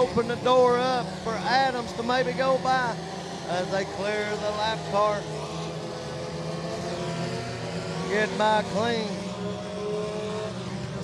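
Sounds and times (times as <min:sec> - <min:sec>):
race car engines at high revs: 0:00.0 - 0:11.0.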